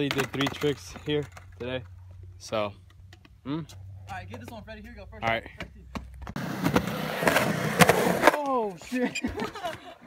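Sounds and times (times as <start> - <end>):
skateboard clacking: 0.0 - 1.6
skateboard wheels rolling on concrete: 0.0 - 10.0.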